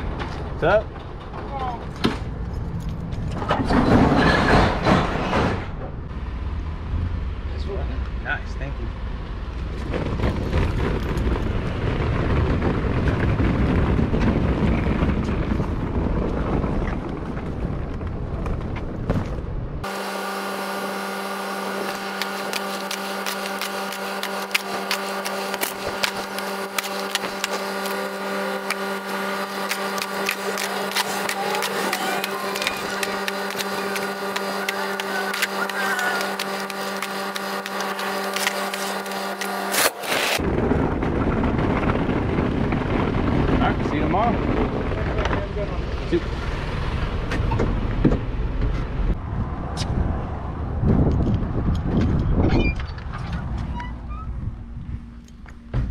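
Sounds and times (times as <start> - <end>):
cart rumbling over concrete: 9.5 - 19.4, 21.8 - 46.1
wind on microphone: 9.8 - 19.3, 48.9 - 55.2
steady mechanical hum: 18.1 - 49.2
packages clicking and knocking: 21.9 - 40.4.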